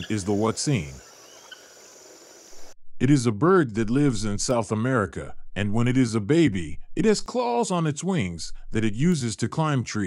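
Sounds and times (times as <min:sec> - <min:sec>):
bird chirp: 0:00.0 - 0:02.8
high insect drone: 0:00.0 - 0:02.8.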